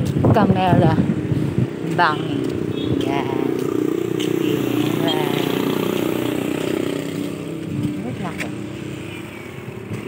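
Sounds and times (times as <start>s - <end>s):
passing vehicle engine: 1.0s - 10.0s.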